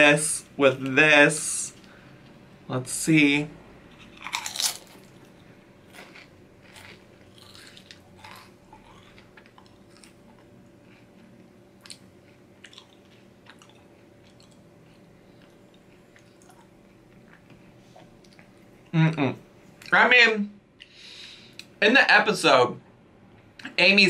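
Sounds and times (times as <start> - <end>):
chewing crunchy chip: 3.9 - 18.7.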